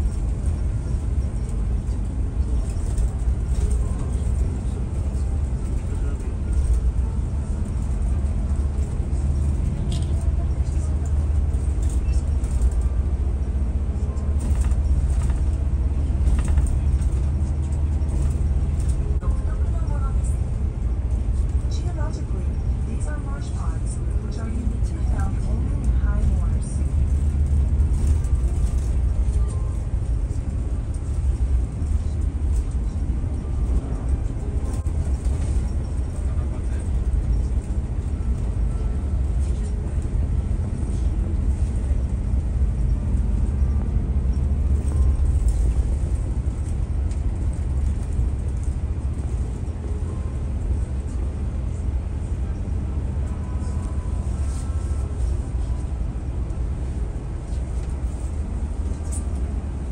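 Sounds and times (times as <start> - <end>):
bus engine rumbling: 0.0 - 59.9
faint voices: 1.1 - 13.0, 13.7 - 41.2.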